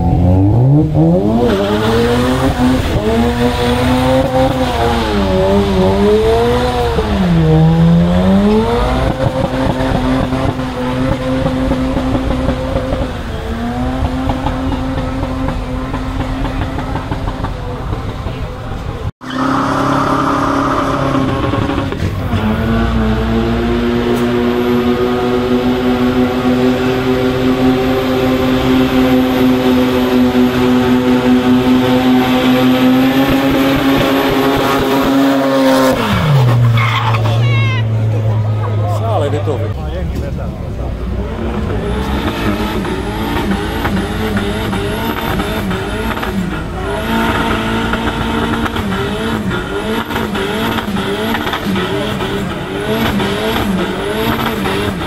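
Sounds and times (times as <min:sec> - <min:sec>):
car engine at high revs: 0:00.0 - 0:55.0
tyres spinning and squealing: 0:00.0 - 0:55.0.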